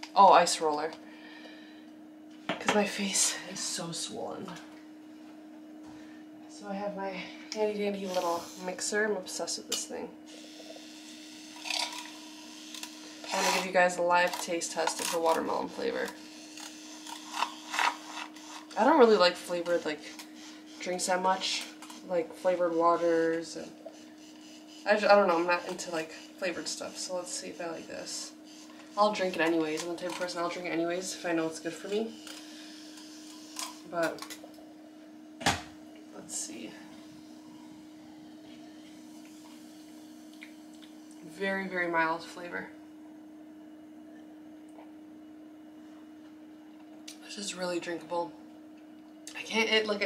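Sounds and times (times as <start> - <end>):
faint steady hum: 0.0 - 50.0
milk frother whirring in a glass: 7.9 - 34.7, 36.8 - 41.4.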